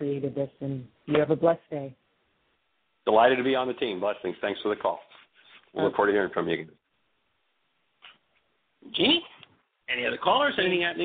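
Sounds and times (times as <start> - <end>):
man talking: 3.1 - 6.8, 8.8 - 11.0.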